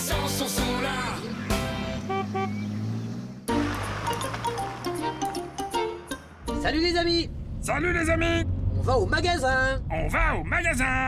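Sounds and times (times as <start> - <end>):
car horn toots: 1.8 - 2.7
light music: 3.5 - 7.1.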